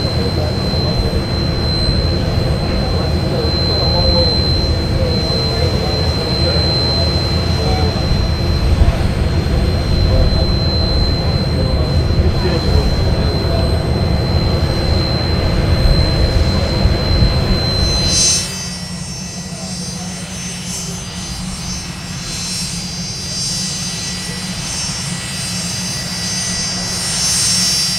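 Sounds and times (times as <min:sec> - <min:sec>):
low rumble: 0:00.0 - 0:18.5
electric rotor motors whining: 0:00.0 - 0:27.9.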